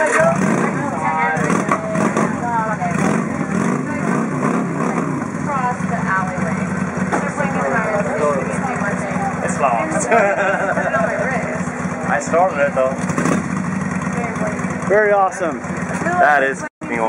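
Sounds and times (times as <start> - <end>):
people talking: 0.0 - 13.0, 14.2 - 17.0
motorcycle engine idling: 0.0 - 17.0.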